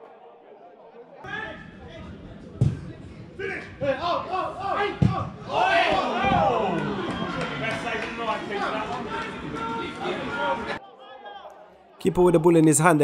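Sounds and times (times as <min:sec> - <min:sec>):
players shouting: 0:01.2 - 0:13.0.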